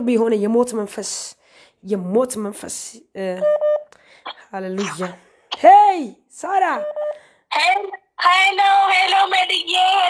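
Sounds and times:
person speaking: 0:04.3 - 0:06.8.

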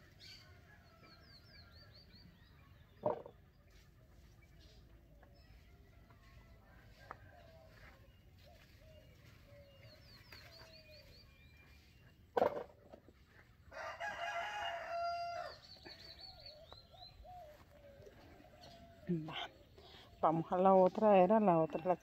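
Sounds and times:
small birds chirping: 0:00.0 - 0:22.0
rooster crowing: 0:13.7 - 0:15.6.

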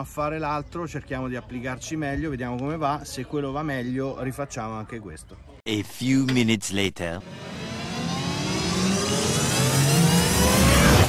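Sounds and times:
rising tone: 0:07.2 - 0:11.0.

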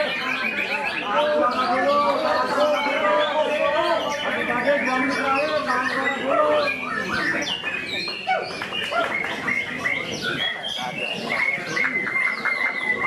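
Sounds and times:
bird singing whistled notes: 0:00.0 - 0:13.0.

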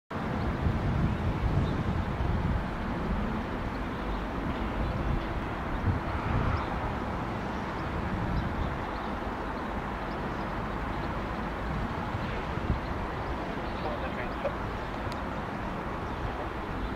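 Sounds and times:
outdoor rumble and hiss: 0:00.1 - 0:16.9.

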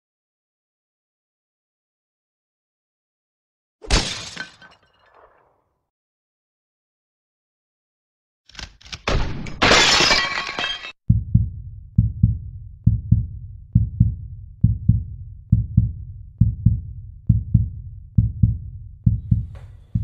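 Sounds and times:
glass breaking crash: 0:03.8 - 0:05.5, 0:09.1 - 0:11.0
heartbeat-like double thump: 0:11.1 - 0:20.0.

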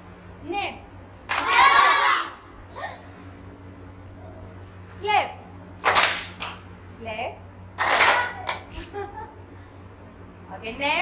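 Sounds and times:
children clapping: 0:01.3 - 0:02.0, 0:05.8 - 0:06.6, 0:07.8 - 0:08.7
children calling out: 0:01.4 - 0:02.4.

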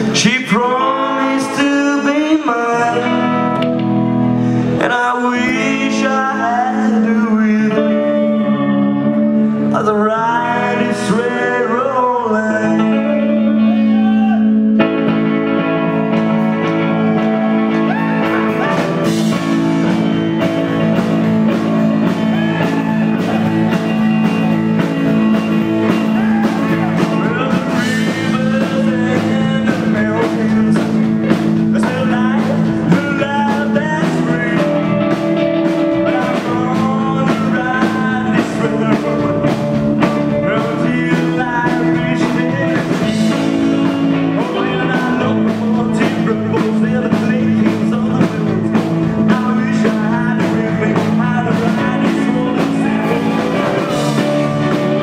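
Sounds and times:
drum kit: 0:00.0 - 0:08.3, 0:12.4 - 0:55.0
electric guitar: 0:00.0 - 0:55.0.

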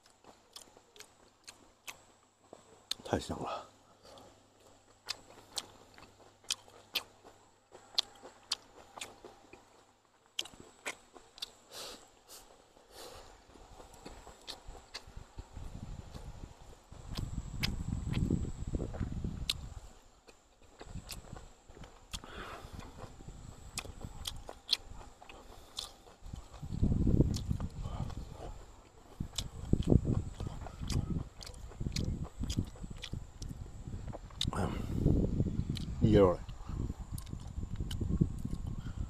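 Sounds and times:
man chewing food: 0:00.0 - 0:03.1, 0:03.7 - 0:39.0.

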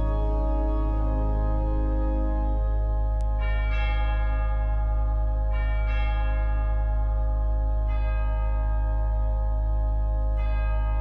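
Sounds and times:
bells ringing: 0:00.0 - 0:11.0
steady low drone: 0:00.0 - 0:11.0.

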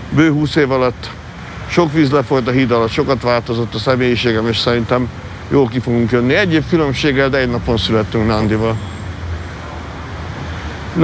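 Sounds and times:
street traffic drone: 0:00.0 - 0:11.0.

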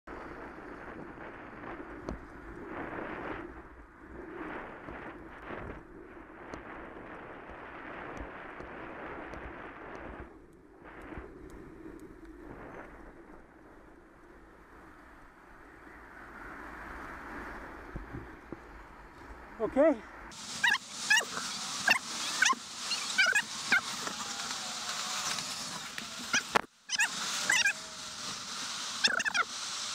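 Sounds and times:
wind rushing over microphone: 0:00.1 - 0:29.9
road and traffic noise: 0:14.5 - 0:29.9.

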